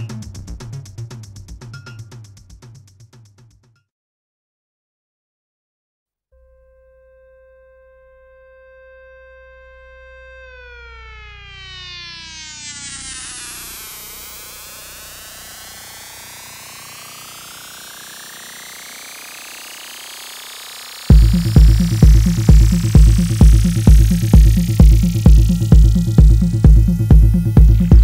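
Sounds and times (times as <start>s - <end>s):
synthesizer held tone: 6.5s - 28.0s
rising synth sweep: 6.6s - 28.0s.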